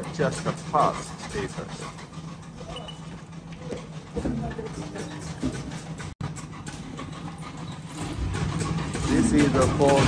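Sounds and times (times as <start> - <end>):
low factory hum: 0.0 - 10.0.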